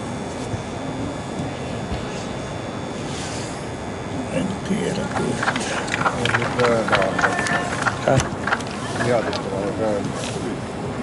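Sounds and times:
players calling out: 4.4s - 9.4s.

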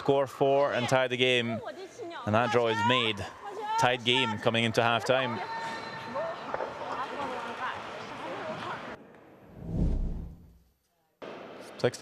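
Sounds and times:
deep whooshing boom: 9.5s - 10.6s.

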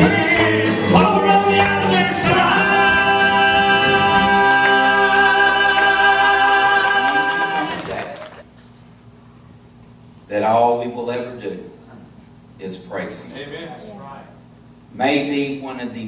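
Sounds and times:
male vocal trio singing in harmony: 0.0s - 8.4s.

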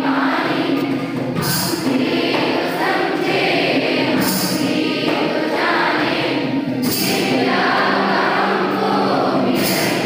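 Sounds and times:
children singing in unison: 0.0s - 10.0s.

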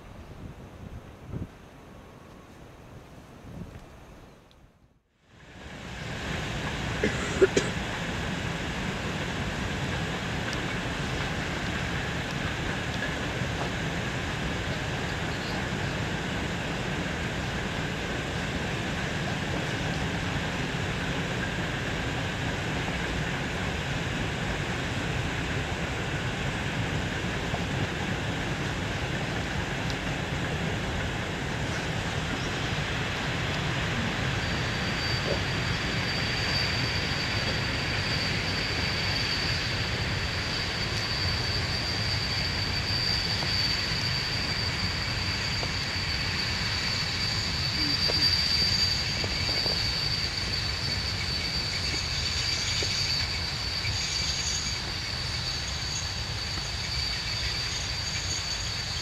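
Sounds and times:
faint high whine: 0.0s - 59.0s
train rumbling: 5.3s - 59.0s.

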